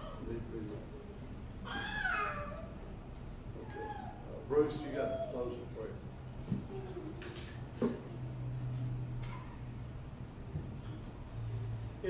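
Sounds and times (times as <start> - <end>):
low room hum: 0.0 - 12.0
child's high-pitched vocal sound: 1.7 - 2.8.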